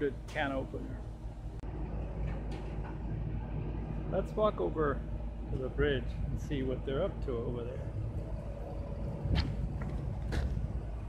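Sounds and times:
low outdoor rumble: 0.0s - 11.0s.

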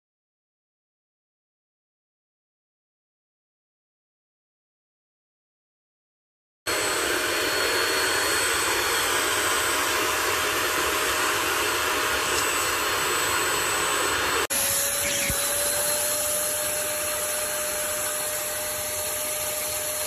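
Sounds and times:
suction motor rushing and whining: 6.7s - 20.0s.

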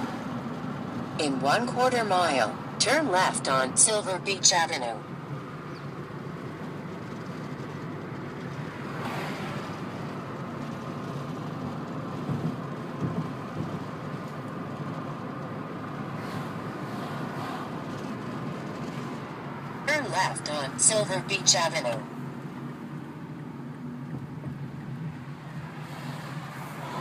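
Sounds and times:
car engine and tyres humming: 0.0s - 27.0s.

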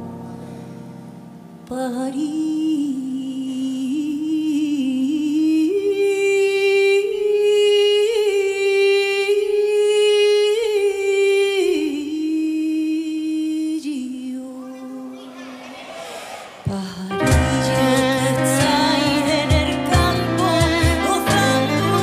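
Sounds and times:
woman singing: 1.6s - 15.2s, 16.5s - 22.0s.

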